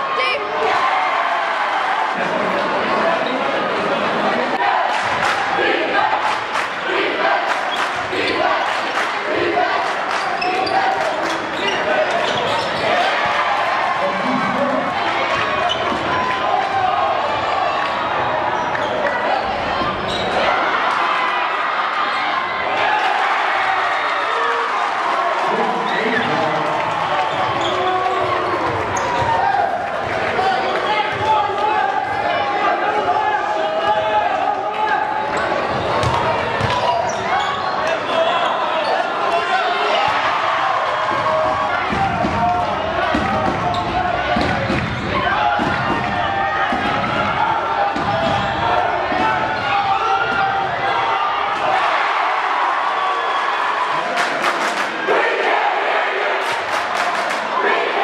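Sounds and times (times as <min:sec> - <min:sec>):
crowd voices: 0:00.0 - 0:58.0.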